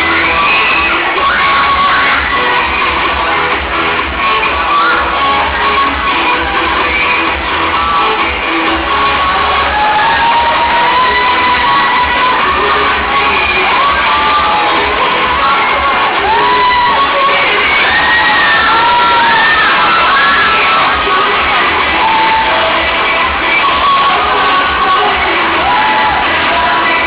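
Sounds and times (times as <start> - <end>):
crowd cheering: 0.0 - 27.0
dance music with pulsing bass: 0.0 - 27.0
high whoops and screams: 4.4 - 27.0.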